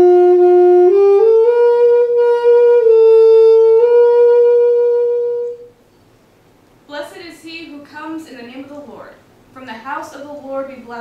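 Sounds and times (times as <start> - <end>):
saxophone long note: 0.0 - 5.8.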